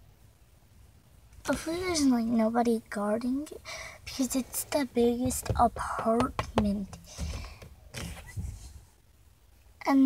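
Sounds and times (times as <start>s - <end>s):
car seat creaks and rustles: 5.2s - 8.8s.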